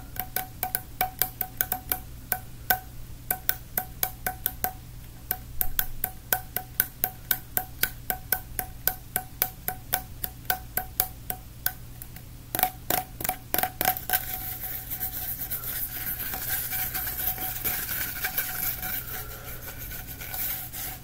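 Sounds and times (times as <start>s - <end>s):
fingers tapping on plastic tube: 0.0s - 21.0s.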